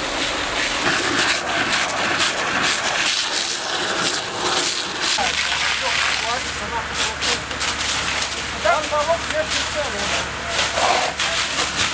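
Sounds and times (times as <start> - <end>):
charred timbers crackling and hissing: 0.0 - 11.9.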